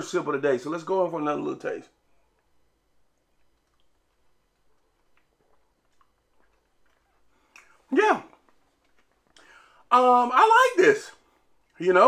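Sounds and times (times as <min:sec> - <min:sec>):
faint mouth sounds: 0:02.0 - 0:09.9.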